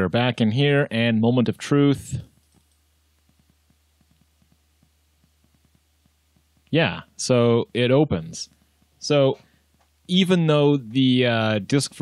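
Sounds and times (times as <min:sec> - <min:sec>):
low steady hum: 0:00.0 - 0:12.0
hard drive ticking: 0:02.0 - 0:12.0.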